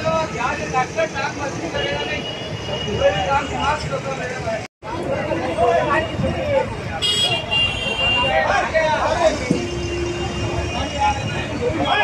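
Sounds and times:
crowd of people talking: 0.0s - 12.0s
traffic: 0.0s - 12.0s
vehicle horns: 7.0s - 8.5s, 9.3s - 12.0s.

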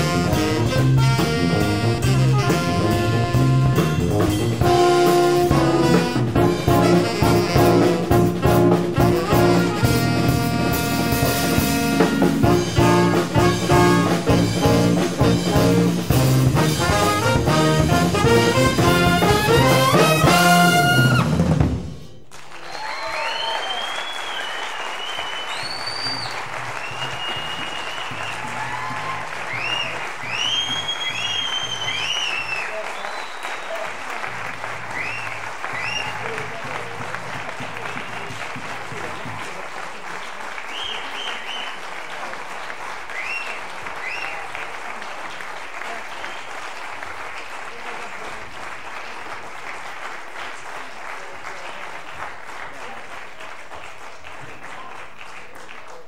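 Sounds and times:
audience applauding and cheering: 0.0s - 56.0s
whoops and whistles: 22.7s - 33.8s, 34.9s - 36.4s, 40.7s - 41.8s, 43.1s - 44.4s.

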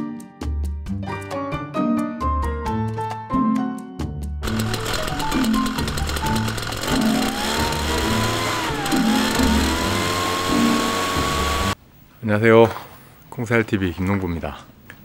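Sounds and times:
mist blower engine rushing hiss: 4.4s - 11.8s.

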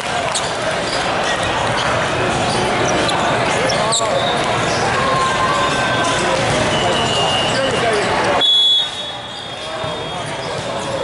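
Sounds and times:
voices of players and spectators: 0.0s - 11.0s
sneaker squeaks on court: 0.3s - 4.9s.

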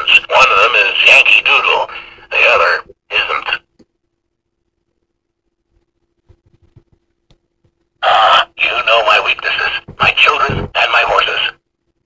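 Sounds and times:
man's recorded voice from toy speaker: 0.0s - 3.7s, 8.0s - 11.6s.

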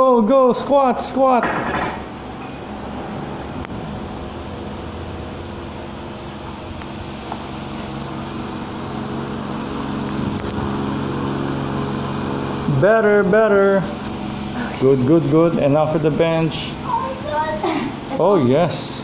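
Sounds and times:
machine hum: 0.0s - 19.0s.

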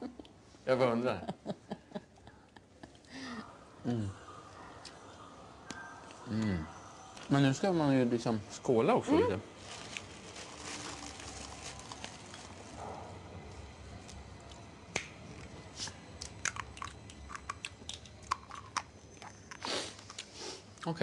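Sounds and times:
low background noise: 0.0s - 21.0s.

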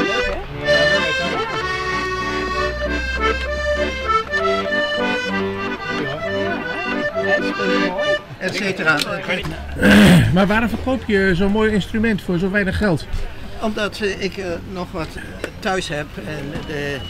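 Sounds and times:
accordion playing a tune: 0.0s - 8.8s.

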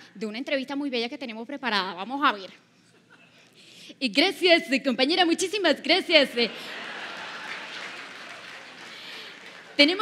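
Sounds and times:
audience applauding: 6.7s - 10.0s.

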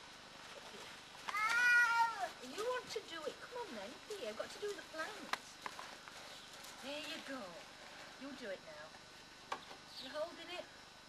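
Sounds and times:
cat meowing: 1.3s - 2.2s.

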